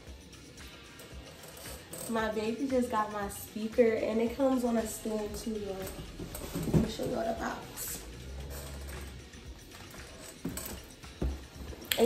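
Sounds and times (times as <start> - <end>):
cardboard box rustling and clatter: 6.2 - 7.4.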